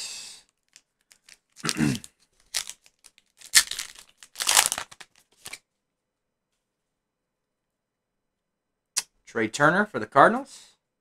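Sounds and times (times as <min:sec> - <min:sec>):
plastic wrapper crinkling and tearing: 0:00.6 - 0:05.6.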